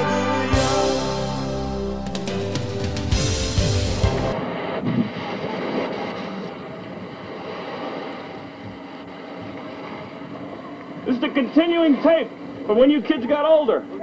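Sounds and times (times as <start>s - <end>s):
rock song: 0.0s - 4.4s
surf on a beach: 3.4s - 14.0s
wind on microphone: 4.3s - 11.0s.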